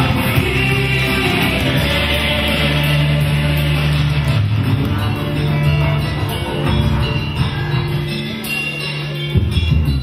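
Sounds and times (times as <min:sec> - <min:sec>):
backing music with low bass: 0:00.0 - 0:10.0.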